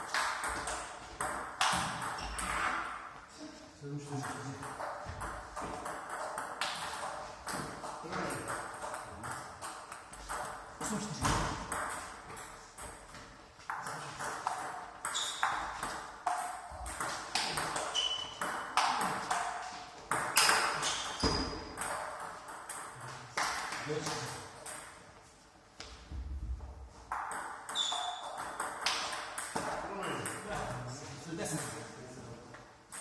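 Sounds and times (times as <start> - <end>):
table tennis balls clicking: 11.6 - 25.1, 27.1 - 30.6.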